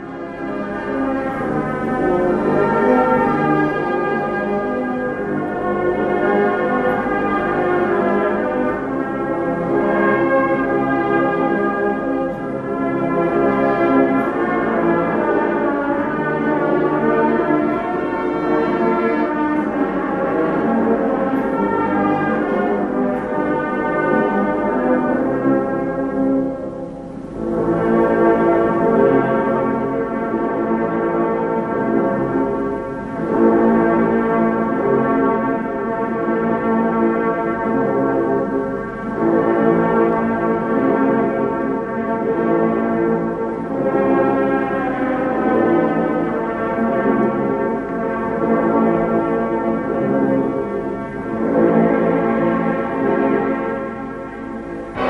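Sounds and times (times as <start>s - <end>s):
brass band playing funeral march: 0.2s - 55.0s.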